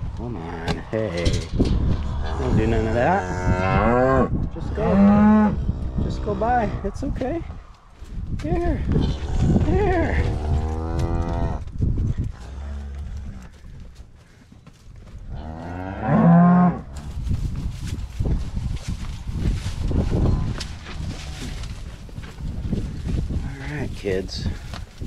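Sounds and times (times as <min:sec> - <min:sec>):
cattle mooing: 0:02.2 - 0:06.5, 0:09.0 - 0:11.6
hoofsteps scuffing on dirt and hay: 0:16.9 - 0:25.0.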